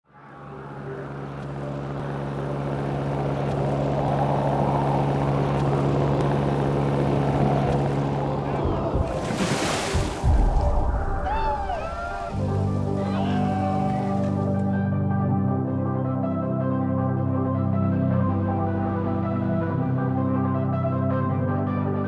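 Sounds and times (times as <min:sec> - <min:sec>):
propeller engine droning: 0:00.1 - 0:20.9
rushing wind: 0:03.2 - 0:14.4
loud rushing noise: 0:07.9 - 0:13.0.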